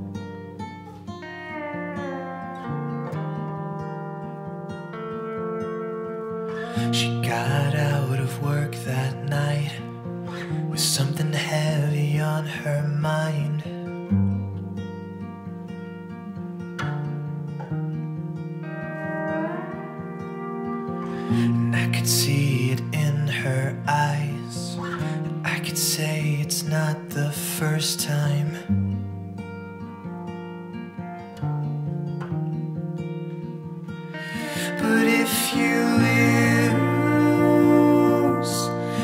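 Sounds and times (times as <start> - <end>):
guitar chords ringing: 0.0 - 39.0.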